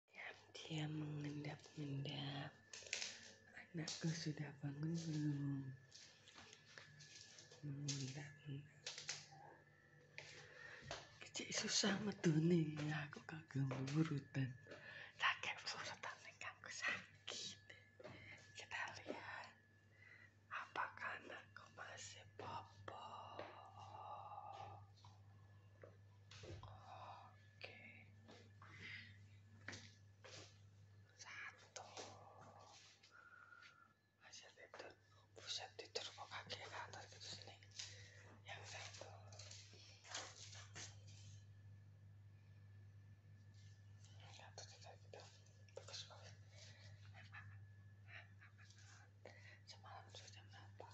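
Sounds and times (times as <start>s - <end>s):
faint low hum: 0.0s - 50.9s
person whispering: 0.1s - 9.5s, 10.9s - 19.6s, 20.5s - 25.2s, 26.4s - 30.4s, 31.1s - 40.3s, 44.0s - 47.6s, 48.2s - 50.9s.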